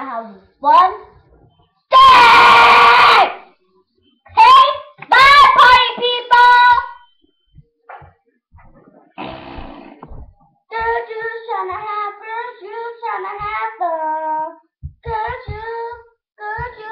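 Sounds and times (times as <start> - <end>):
child singing unaccompanied: 4.3 - 7.1, 10.7 - 16.9
light low knocks: 9.6 - 11.0, 14.8 - 15.7.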